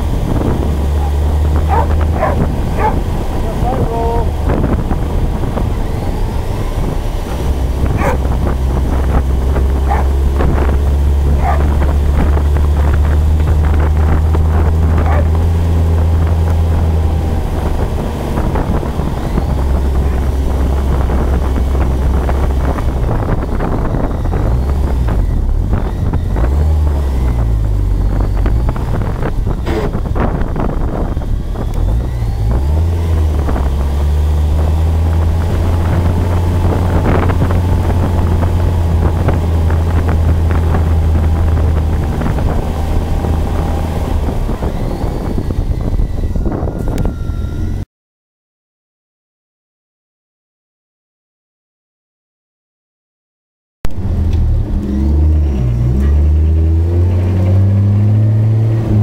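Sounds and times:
truck engine running: 0:00.0 - 0:47.8
wind on microphone: 0:00.0 - 0:47.8.

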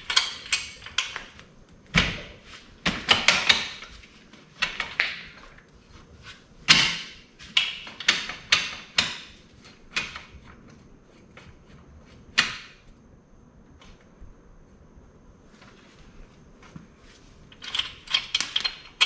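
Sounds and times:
metal tools clinking: 0:17.5 - 0:19.0.

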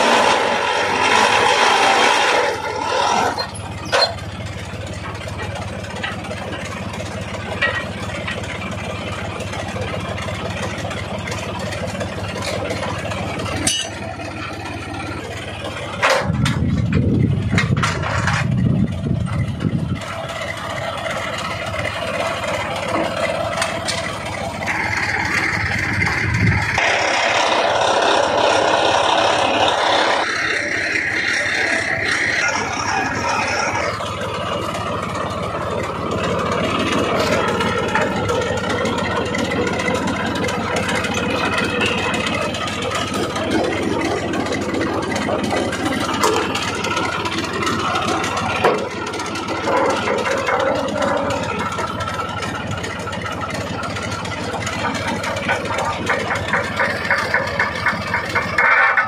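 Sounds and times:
tractor engine running: 0:00.0 - 0:59.0.

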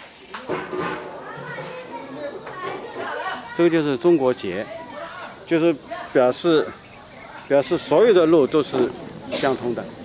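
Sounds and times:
chatter of passers-by: 0:00.0 - 0:10.0
children's voices: 0:00.4 - 0:10.0.

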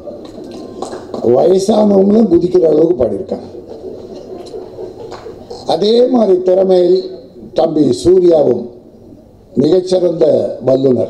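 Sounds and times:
man speaking into a microphone: 0:01.2 - 0:03.6, 0:05.6 - 0:08.8, 0:09.6 - 0:11.0.

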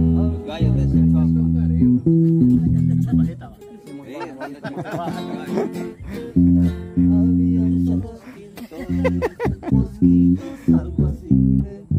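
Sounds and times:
acoustic guitars and bass chords: 0:00.0 - 0:11.9.

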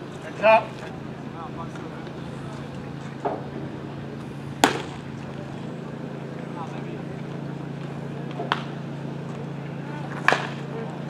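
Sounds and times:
steady low hum: 0:00.0 - 0:11.0
baseball smacking into catcher's mitt: 0:04.6 - 0:05.0.

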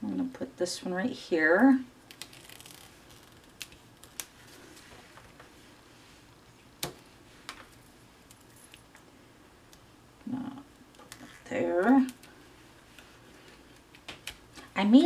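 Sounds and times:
handling card and adhesive strips: 0:02.1 - 0:04.9.

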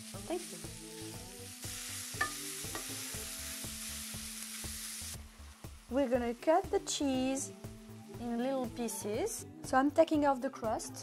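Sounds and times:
food sizzling in a frying pan: 0:00.0 - 0:09.4.

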